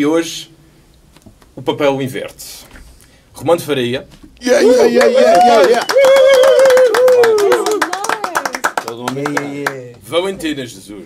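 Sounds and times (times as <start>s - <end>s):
person cheering: 4.4s - 8.4s
people clapping: 4.4s - 10.1s.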